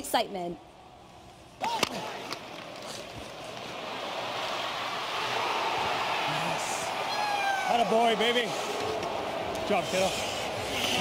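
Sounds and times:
crowd and rink rushing noise: 0:01.2 - 0:11.0.

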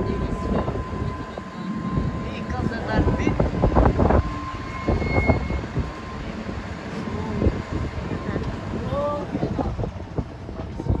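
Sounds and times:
faint voices: 0:00.0 - 0:11.0
low engine rumble: 0:00.0 - 0:11.0
short thin tone: 0:04.2 - 0:07.4.

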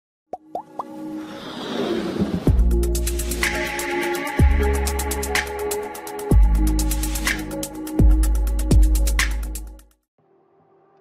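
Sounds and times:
plops rising in pitch: 0:00.3 - 0:01.0
steady music tone: 0:02.5 - 0:09.8.

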